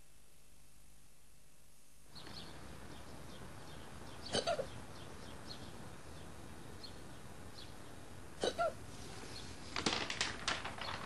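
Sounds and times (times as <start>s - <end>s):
hiccup-like vocal sound: 4.3s - 4.7s.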